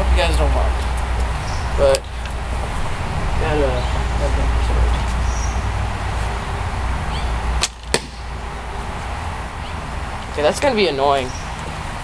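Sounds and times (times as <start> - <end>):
arrow striking: 7.6 - 8.3.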